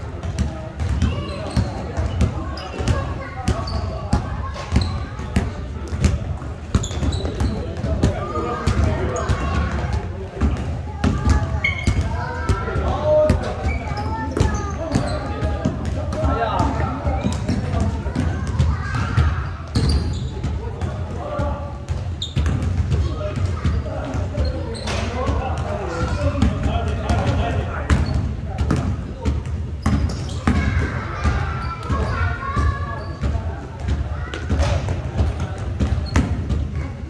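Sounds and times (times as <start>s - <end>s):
basketball bouncing on gym court: 0.1s - 37.0s.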